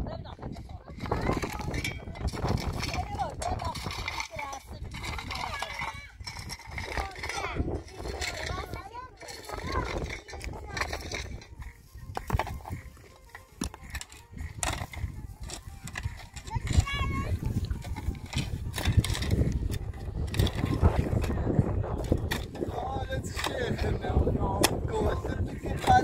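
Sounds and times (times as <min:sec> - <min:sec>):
wind rumble on microphone: 0:00.0 - 0:26.0
shovels scraping stony soil: 0:00.5 - 0:26.0.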